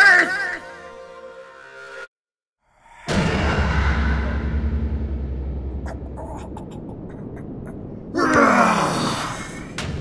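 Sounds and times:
low rumble: 0:02.8 - 0:08.8
man groaning: 0:08.1 - 0:09.7.

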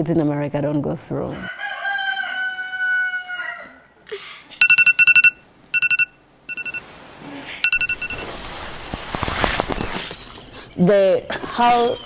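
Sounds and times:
rooster crowing: 0:01.4 - 0:03.9.

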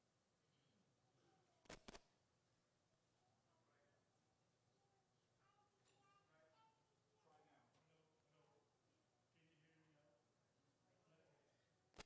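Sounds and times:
faint distant voices: 0:03.1 - 0:12.0.

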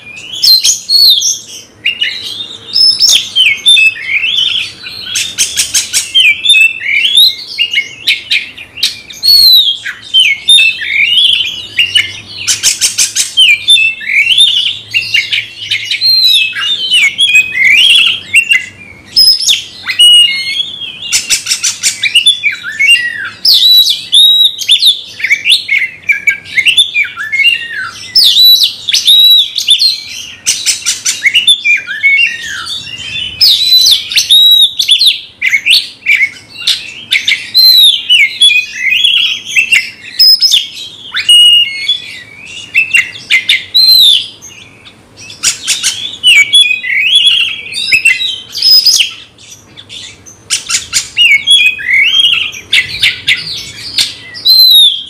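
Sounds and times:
bird singing whistled phrases: 0:00.0 - 0:55.0
harsh rattling bird notes: 0:00.1 - 0:26.8, 0:27.4 - 0:55.0.

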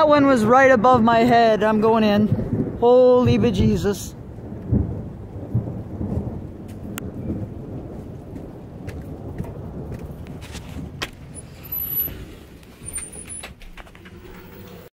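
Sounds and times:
thunder rumble: 0:00.0 - 0:14.9
wind noise on microphone: 0:00.0 - 0:14.9.

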